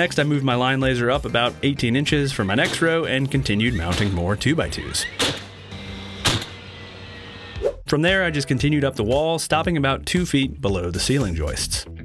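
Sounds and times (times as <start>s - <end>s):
nail gun shots: 5.2s - 5.6s, 6.2s - 6.6s.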